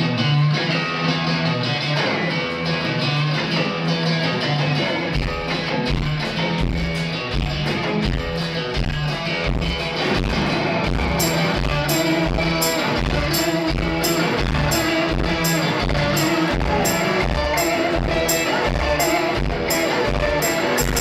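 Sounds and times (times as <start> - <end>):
acoustic guitar: 0.0 - 21.0
electric guitar: 0.0 - 21.0
low thudding beat: 5.2 - 21.0.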